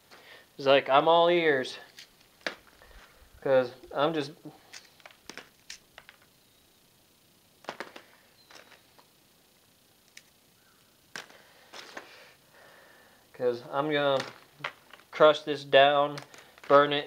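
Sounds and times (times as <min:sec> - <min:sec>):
coal lumps clicking together: 0:04.6 - 0:06.3, 0:07.6 - 0:09.1, 0:11.1 - 0:12.2, 0:13.8 - 0:17.0.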